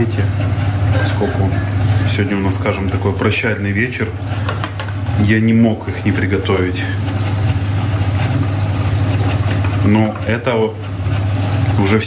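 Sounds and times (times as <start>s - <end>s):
kitchen machine humming: 0.0s - 12.0s.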